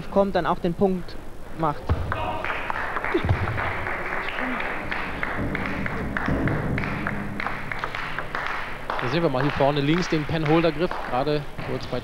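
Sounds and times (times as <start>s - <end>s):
low crowd noise: 0.0s - 12.0s
crowd clapping: 2.0s - 12.0s.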